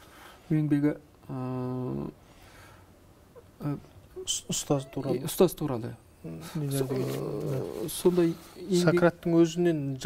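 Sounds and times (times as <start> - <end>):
man's drawn-out hesitation sound: 3.6 - 9.1.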